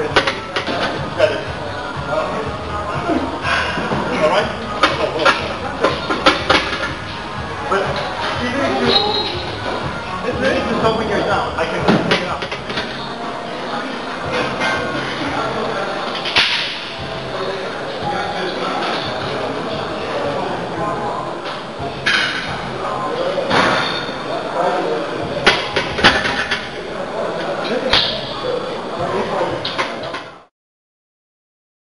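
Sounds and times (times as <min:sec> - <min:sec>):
voices in gym: 0:00.0 - 0:30.5.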